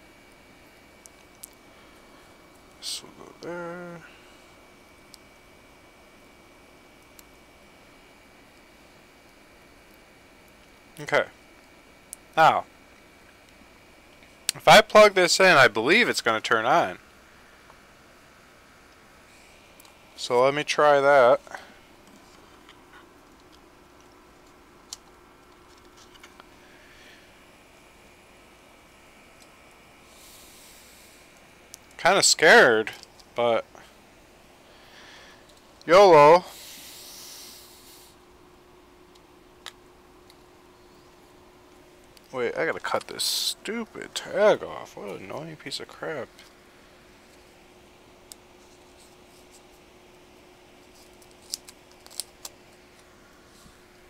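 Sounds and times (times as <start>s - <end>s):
faint steady hum: 0.0s - 54.0s.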